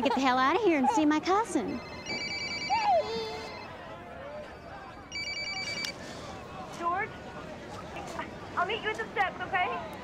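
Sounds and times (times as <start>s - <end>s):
mobile phone ringing: 1.6s - 3.8s, 5.1s - 6.0s.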